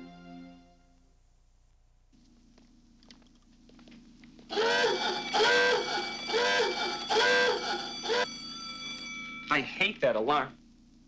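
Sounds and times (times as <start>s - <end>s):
electronic alarm whoops: 4.6s - 9.1s.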